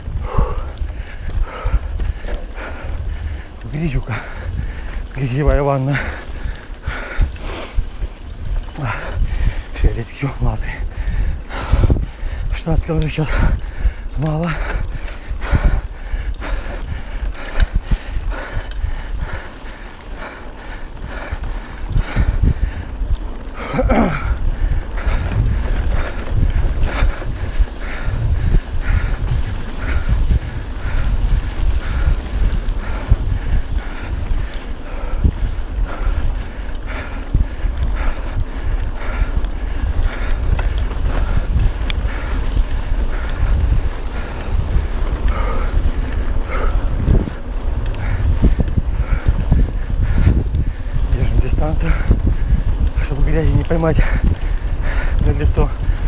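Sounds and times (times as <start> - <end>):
bike tyre and drivetrain noise: 0.0 - 56.0
wind buffeting microphone: 0.0 - 56.0.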